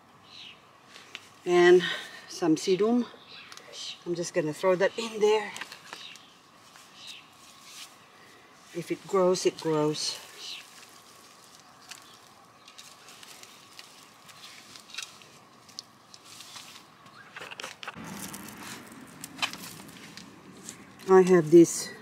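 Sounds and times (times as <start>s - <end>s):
soil and cuttings rustling: 0.8s - 22.0s.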